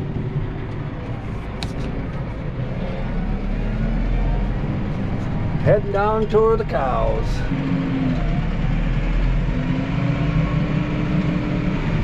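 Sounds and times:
tractor engine rumble: 0.0s - 12.0s.

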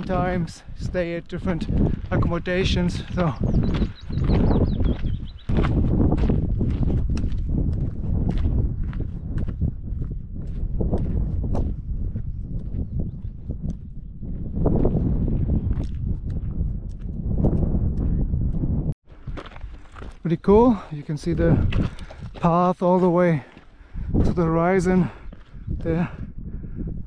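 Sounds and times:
wind rumble on microphone: 0.0s - 27.0s
boots crunching on gravel: 3.0s - 9.1s, 19.1s - 24.3s.

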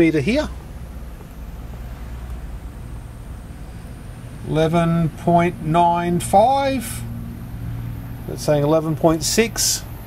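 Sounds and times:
power supply cooling fan hum: 0.0s - 10.0s.

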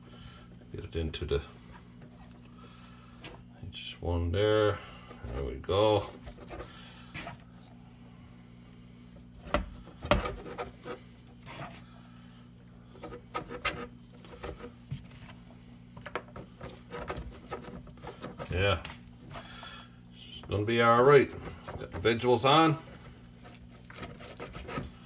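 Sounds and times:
hands squishing moist meat: 0.0s - 7.3s
steady low hum: 0.0s - 25.0s.

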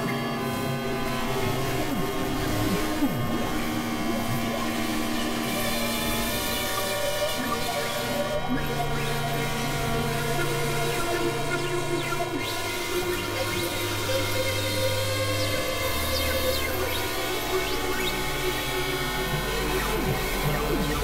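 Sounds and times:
synthesizer drone music: 0.0s - 21.0s.

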